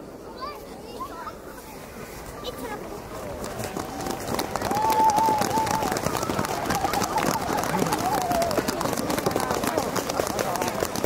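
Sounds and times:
voices of outdoor crowd: 0.0 - 11.0.

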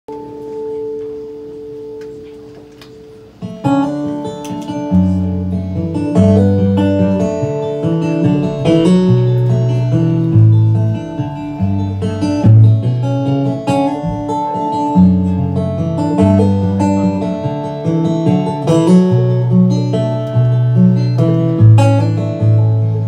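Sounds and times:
picked acoustic guitar: 0.1 - 23.0
bass guitar notes: 3.1 - 23.0.

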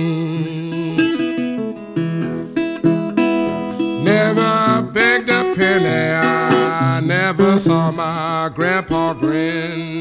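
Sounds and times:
acoustic blues guitar: 0.0 - 10.0.

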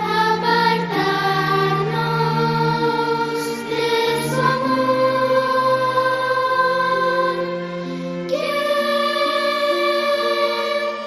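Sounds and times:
choir singing slowly: 0.0 - 11.0.

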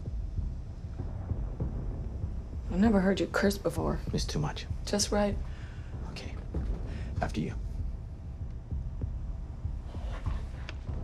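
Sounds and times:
low soundtrack hum: 0.0 - 11.0
soft low pulses: 0.0 - 11.0.

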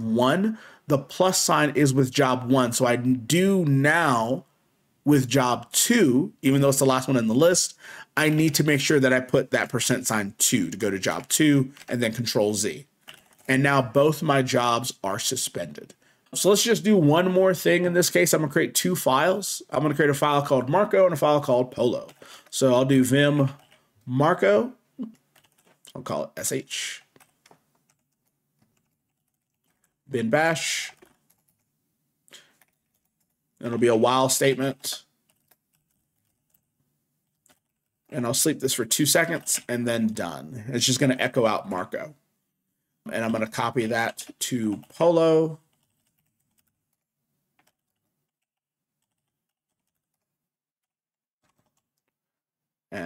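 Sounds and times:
faint keyboard typing: 9.6 - 13.6, 19.8 - 24.1, 25.0 - 31.7, 32.3 - 33.8, 34.7 - 40.1, 43.2 - 50.4, 51.4 - 52.2.

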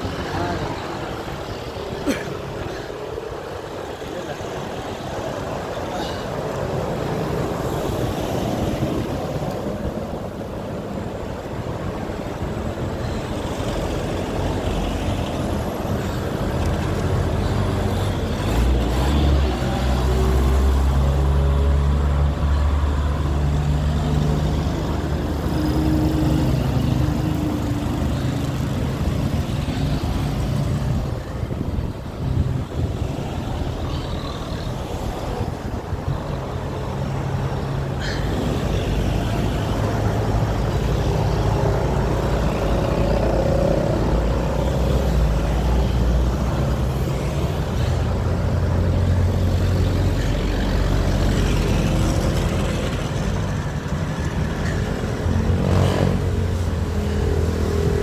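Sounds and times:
car and motorcycle engines: 0.0 - 58.0
wind buffeting microphone: 28.6 - 36.6.

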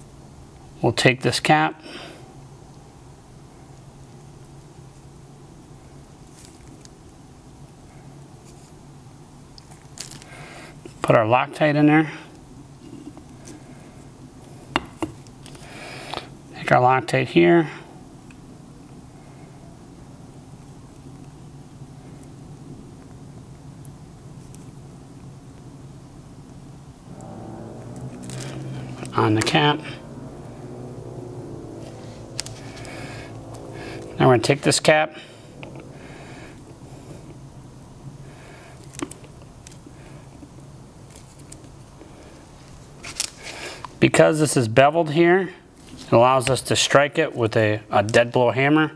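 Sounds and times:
faint low hum: 0.0 - 48.9.

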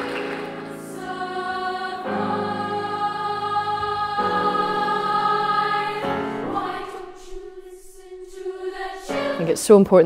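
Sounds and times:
youth choir singing chords: 0.0 - 10.0.

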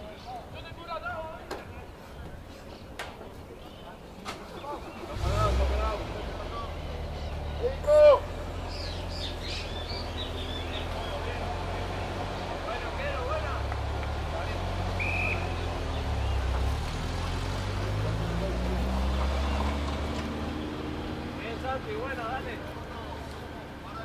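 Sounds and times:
vehicle engine rumbling: 1.7 - 24.0
distant shouts from players: 7.2 - 16.5.

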